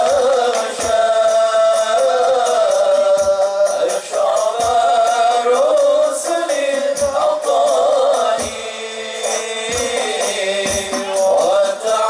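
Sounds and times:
hand percussion: 0:00.0 - 0:12.0
men singing devotional song: 0:00.0 - 0:12.0
deep bass drum beats: 0:09.7 - 0:11.6.

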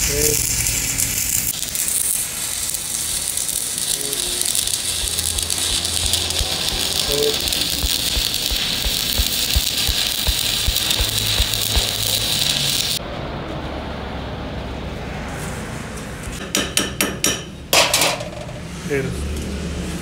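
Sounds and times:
welding arc crackling and sizzling: 0:00.0 - 0:13.0.

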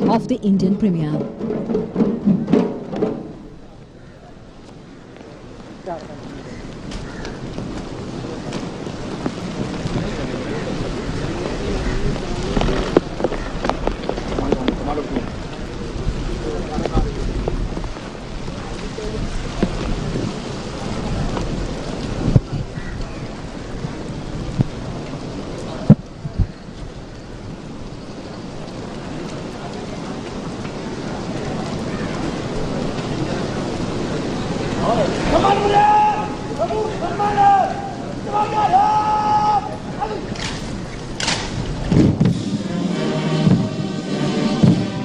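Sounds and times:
steady rain falling: 0:00.0 - 0:45.0
sharp low thumps: 0:41.9 - 0:45.0.

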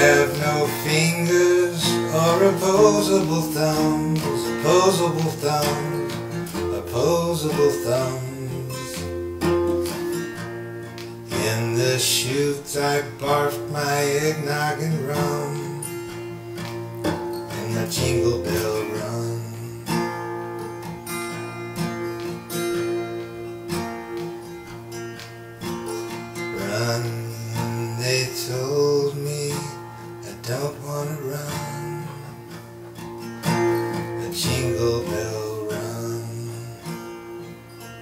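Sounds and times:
acoustic guitar strumming: 0:00.0 - 0:38.0.

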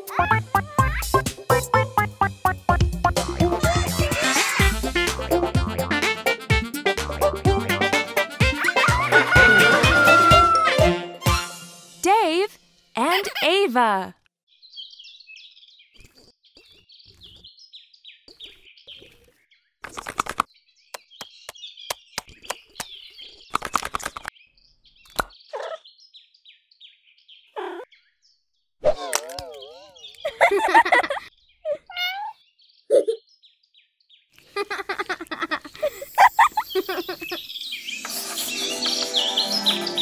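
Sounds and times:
cartoon sound effects: 0:08.4 - 0:11.5, 0:28.9 - 0:30.1
birds chirping: 0:12.1 - 0:19.5, 0:20.2 - 0:28.4, 0:29.4 - 0:40.0.

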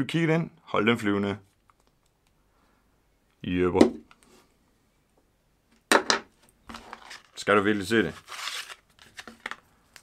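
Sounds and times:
cable rustling and crinkling: 0:06.4 - 0:10.0.

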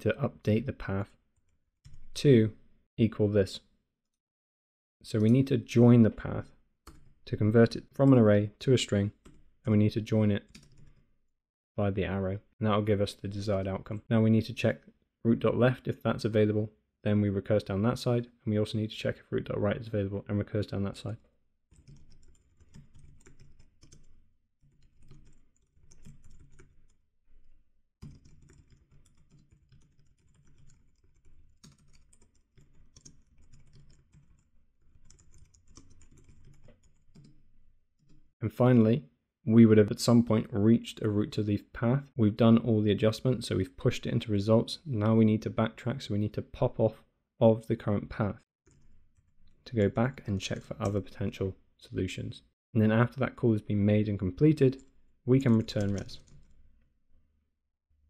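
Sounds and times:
computer keyboard typing: 0:10.4 - 0:11.0, 0:21.7 - 0:37.4, 0:48.7 - 0:49.5, 0:55.5 - 0:56.6.

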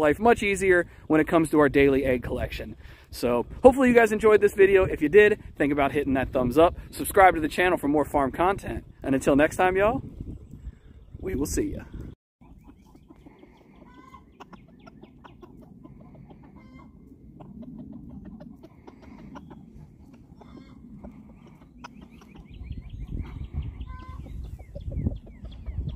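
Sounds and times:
hens clucking: 0:12.4 - 0:25.9.

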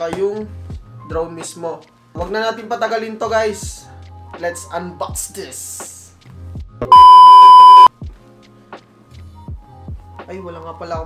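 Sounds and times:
faint background music: 0:00.0 - 0:07.0, 0:07.9 - 0:11.0
electronic test-tone beep: 0:06.9 - 0:07.9.

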